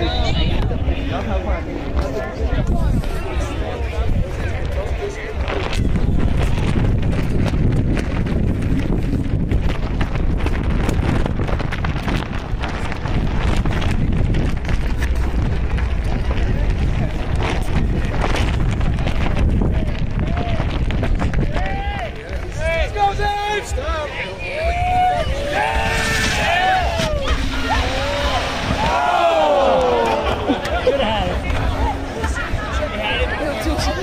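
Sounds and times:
crowd voices: 0:00.0 - 0:34.0
wind buffeting microphone: 0:00.0 - 0:34.0.

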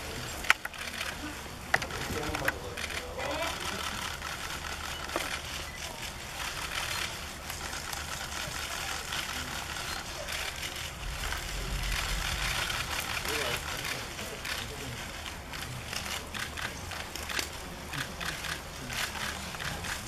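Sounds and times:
murmuring voices: 0:00.0 - 0:20.0
low steady hum: 0:07.2 - 0:16.4.

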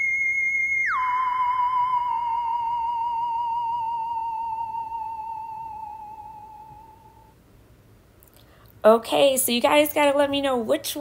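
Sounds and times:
eerie electronic tone sliding down: 0:00.8 - 0:07.3.

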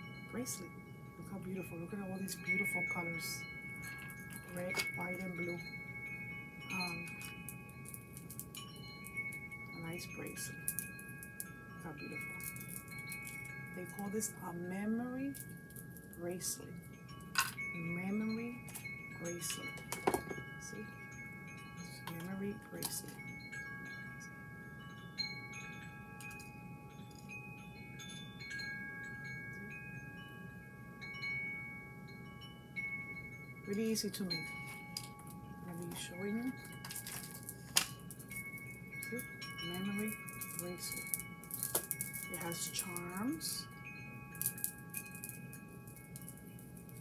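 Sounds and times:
chime-like tones ringing: 0:00.0 - 0:47.0
bracelet beads clicking: 0:12.2 - 0:13.6, 0:34.9 - 0:35.4, 0:36.6 - 0:43.6, 0:44.4 - 0:47.0.

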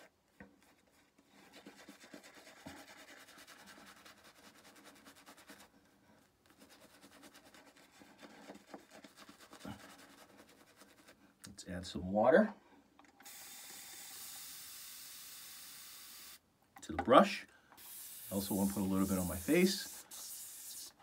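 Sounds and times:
shaving brush scrubbing lather: 0:01.4 - 0:05.7, 0:06.5 - 0:11.2, 0:17.8 - 0:21.0.

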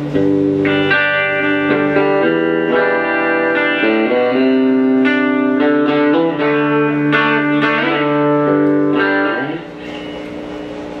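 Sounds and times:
guitar note bending upward: 0:00.0 - 0:10.6
electric guitar chord ringing: 0:00.0 - 0:11.0.

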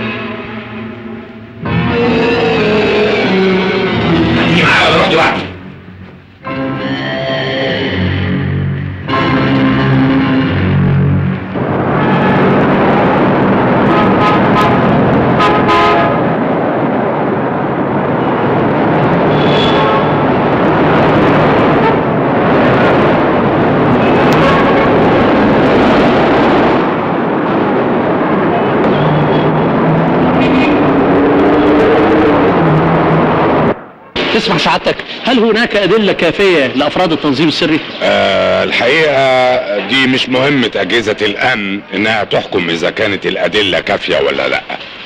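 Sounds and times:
cars passing: 0:00.0 - 0:45.0
car horn: 0:09.0 - 0:12.8, 0:13.7 - 0:16.4, 0:19.1 - 0:20.7, 0:21.3 - 0:22.4, 0:23.9 - 0:25.2, 0:28.6 - 0:29.7.

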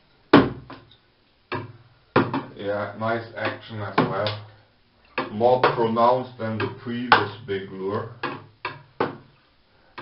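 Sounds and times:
wooden lure hitting water: 0:08.2 - 0:09.2.

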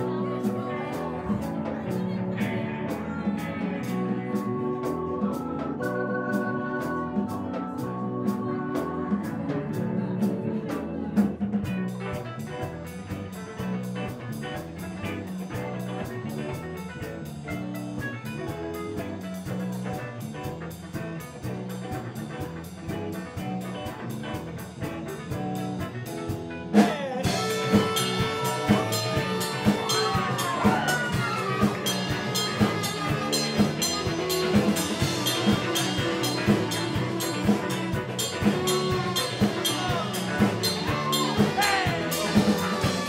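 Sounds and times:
electric organ lead: 0:00.0 - 0:43.0
live rock band playing: 0:00.0 - 0:43.0
cymbals crashing: 0:27.3 - 0:43.0.

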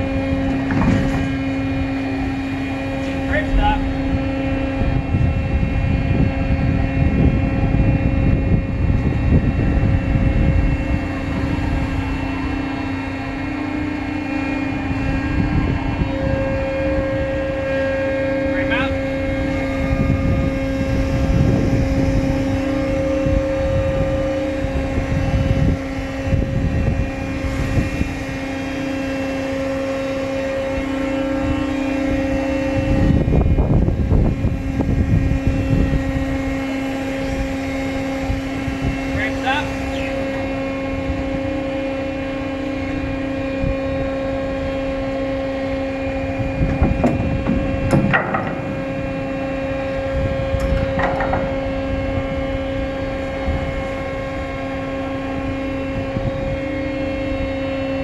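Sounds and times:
machinery two-tone hum: 0:00.0 - 0:58.0
wind rumbling on microphone: 0:00.0 - 0:58.0.

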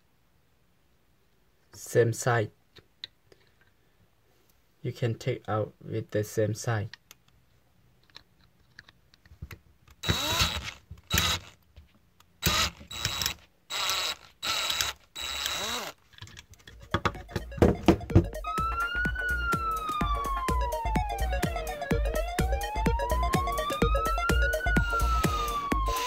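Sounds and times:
drill drilling metal rivet: 0:10.0 - 0:11.6, 0:12.4 - 0:16.0
music with quick beat: 0:16.9 - 0:26.0
siren wail: 0:17.2 - 0:26.0.

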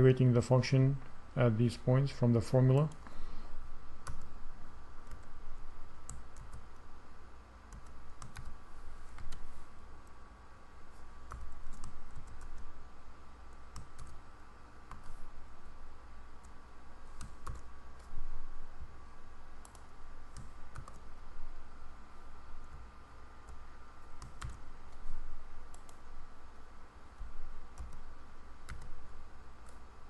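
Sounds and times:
steady low hum: 0:00.0 - 0:30.0
keyboard typing clicks: 0:07.7 - 0:08.5, 0:09.1 - 0:09.4, 0:11.2 - 0:12.7, 0:13.7 - 0:14.2, 0:17.2 - 0:18.1, 0:19.6 - 0:21.0, 0:24.2 - 0:25.0, 0:25.7 - 0:26.0, 0:27.8 - 0:28.0, 0:28.6 - 0:29.0.

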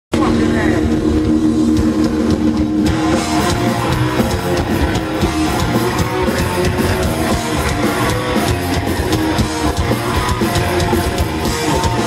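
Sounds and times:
distorted guitar chord: 0:00.1 - 0:12.0
live metal band: 0:00.1 - 0:12.0
crowd voices: 0:00.2 - 0:12.0.

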